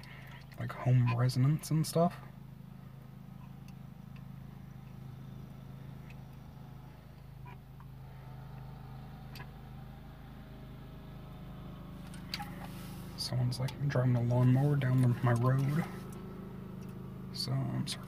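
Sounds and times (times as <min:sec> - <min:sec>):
lawnmower engine running: 0:00.0 - 0:18.0.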